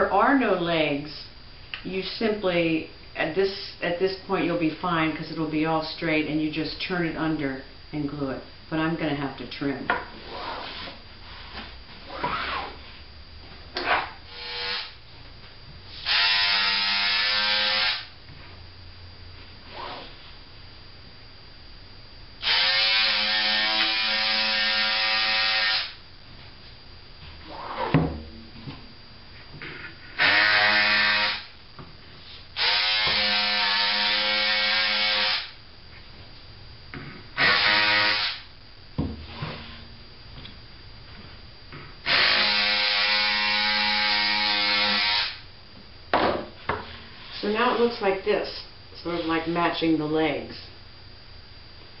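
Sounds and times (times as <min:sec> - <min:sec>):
electric scissors buzzing: 0:13.8 - 0:15.0, 0:16.0 - 0:18.2, 0:22.4 - 0:26.0, 0:30.0 - 0:31.6, 0:32.6 - 0:35.6, 0:37.4 - 0:38.5, 0:42.0 - 0:45.5.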